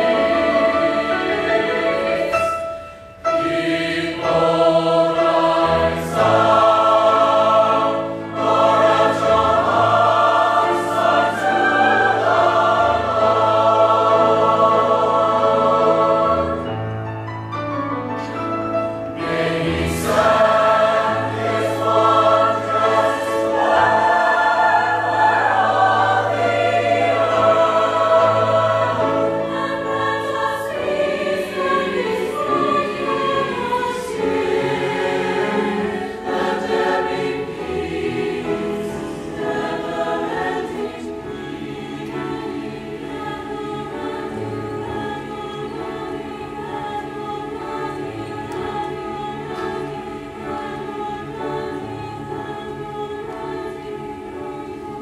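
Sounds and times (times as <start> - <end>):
choir singing: 0.0 - 17.2, 18.2 - 55.0.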